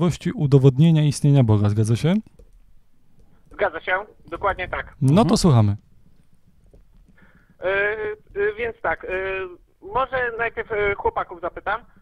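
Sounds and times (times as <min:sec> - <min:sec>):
faint room noise: 0:00.0 - 0:12.0
man's voice over telephone: 0:03.6 - 0:05.8, 0:07.6 - 0:11.9.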